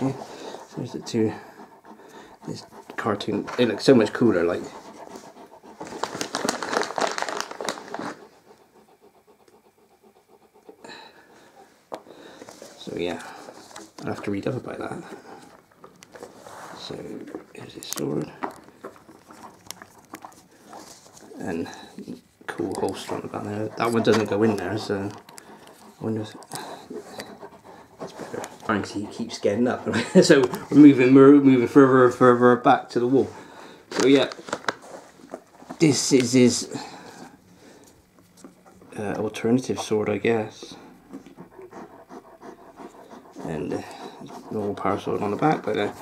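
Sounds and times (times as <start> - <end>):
dog panting: 0.0 - 46.0.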